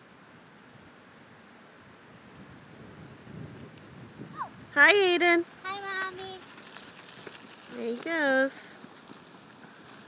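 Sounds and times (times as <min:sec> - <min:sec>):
wind noise: 0:02.1 - 0:10.0
bicycle rolling over gravel: 0:02.3 - 0:10.0.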